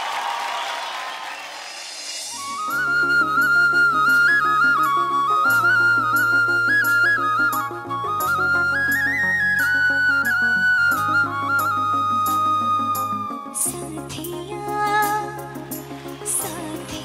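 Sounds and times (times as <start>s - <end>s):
backing music: 2.1s - 17.0s
bamboo flute melody: 2.3s - 14.0s.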